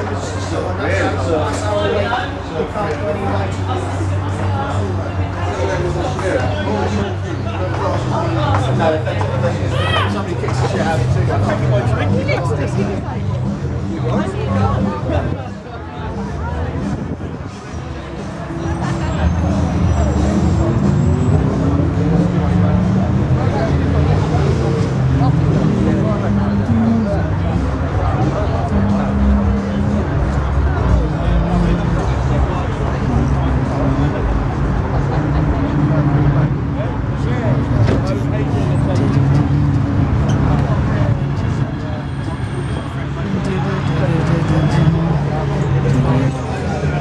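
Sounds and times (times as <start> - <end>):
people talking: 0.0 - 47.0
car engine rumbling: 16.0 - 47.0.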